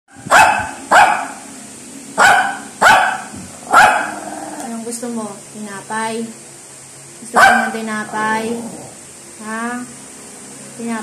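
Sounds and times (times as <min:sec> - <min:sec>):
small dog barking: 0:00.1 - 0:01.5, 0:02.2 - 0:04.3, 0:07.4 - 0:07.9.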